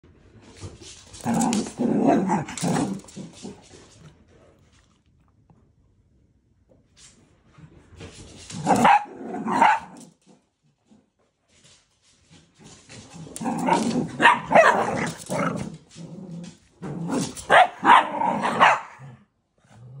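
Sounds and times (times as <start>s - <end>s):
dog growling: 1.2s - 5.0s, 8.5s - 10.0s, 13.0s - 20.0s
dog barking: 8.7s - 10.0s, 13.7s - 15.2s, 17.5s - 19.2s.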